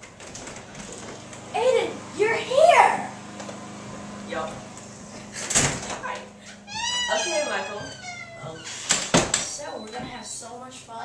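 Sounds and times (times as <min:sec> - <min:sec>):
high voice calling out: 0:06.7 - 0:08.6
door thumping: 0:06.7 - 0:10.2.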